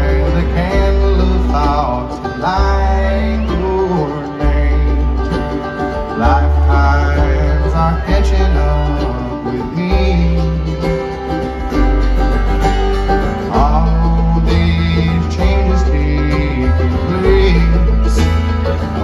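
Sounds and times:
acoustic guitar: 0.0 - 19.0
banjo: 0.0 - 19.0
fiddle: 0.0 - 19.0
upright bass notes: 0.0 - 19.0.

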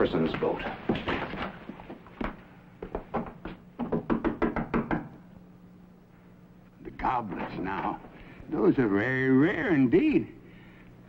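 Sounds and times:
sharp wooden knocks: 2.9 - 5.2.

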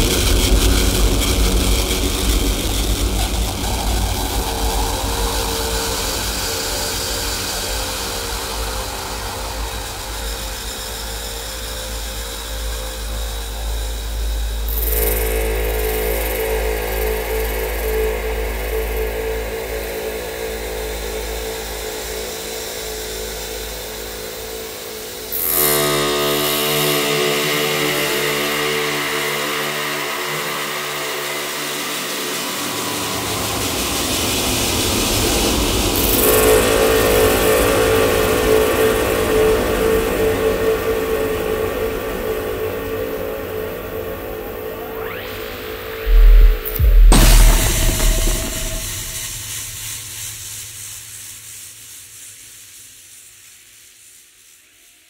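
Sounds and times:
droning tones: 42.6 - 49.9
low rumble and hiss: 46.1 - 50.4.

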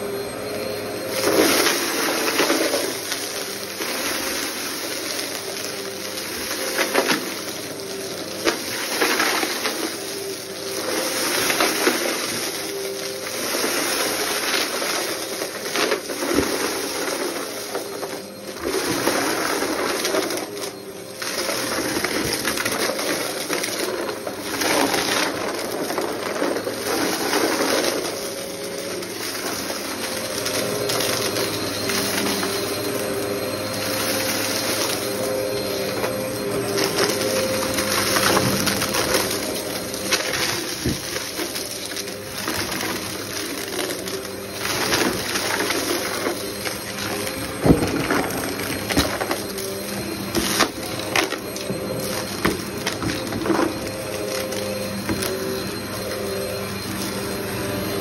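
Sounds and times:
vacuum cleaner motor hum: 0.0 - 58.0.

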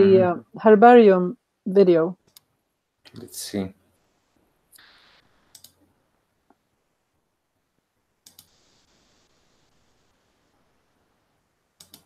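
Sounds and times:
computer mouse clicks: 2.2 - 2.5, 4.8 - 5.8, 8.2 - 8.6, 11.8 - 12.0.

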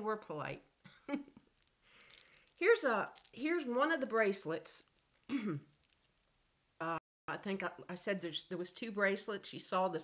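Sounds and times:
woman clearing her throat: 5.3 - 5.7.

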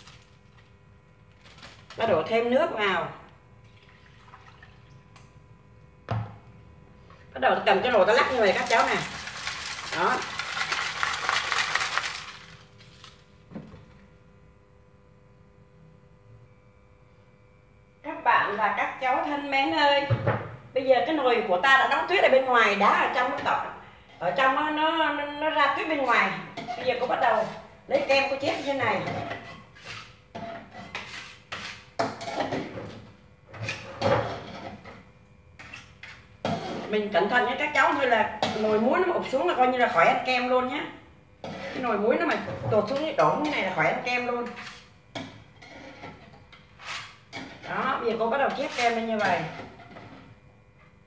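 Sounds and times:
ice and salt rattling in pot: 8.2 - 12.7
spoon scraping metal pot: 26.5 - 27.6, 28.4 - 32.6, 41.4 - 43.7, 45.5 - 50.4.

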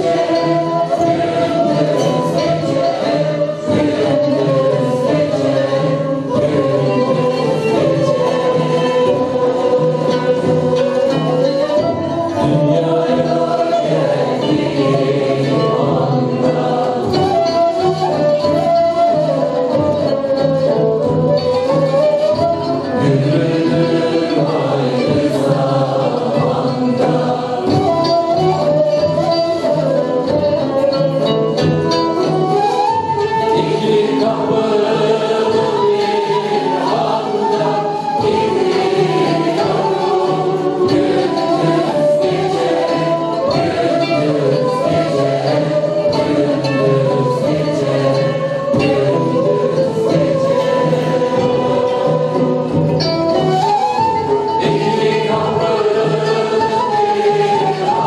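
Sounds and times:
choir singing a hymn: 0.0 - 20.4, 21.4 - 30.7, 31.9 - 58.0
frame drums: 0.0 - 58.0
ney flute: 0.0 - 58.0
man singing lead: 22.8 - 28.2.

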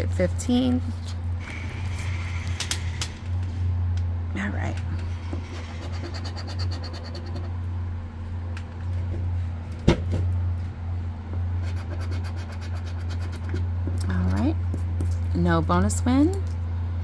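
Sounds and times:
low machinery hum: 0.0 - 17.0.

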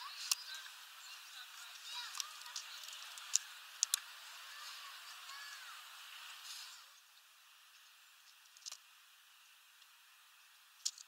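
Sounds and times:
bird chirping: 0.0 - 11.0
steady hiss: 0.0 - 11.0
seed clicks: 1.6 - 4.1.

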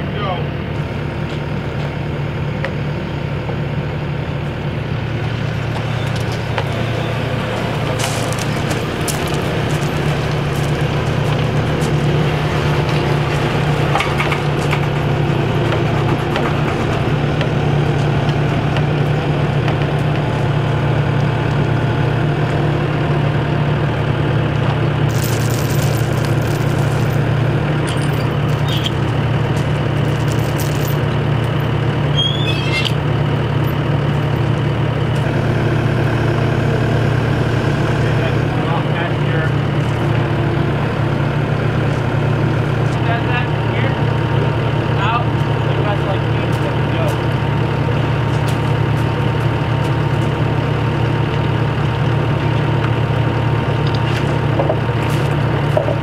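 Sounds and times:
diesel engine running under load: 0.0 - 56.0.

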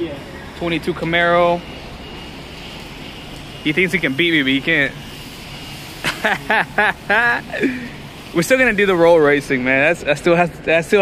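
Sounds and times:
man laughing: 6.0 - 8.0.

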